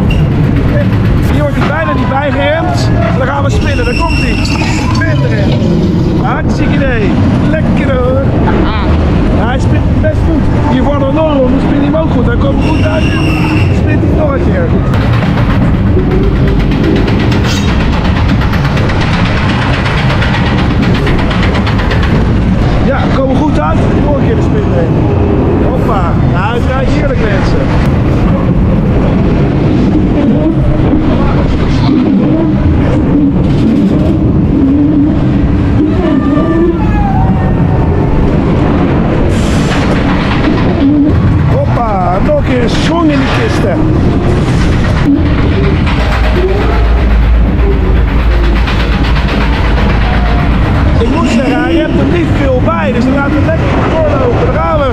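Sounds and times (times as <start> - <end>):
coaster wheels rumbling on track: 0.0 - 54.9
wind noise on microphone: 0.0 - 54.9
riders calling out: 33.9 - 37.7.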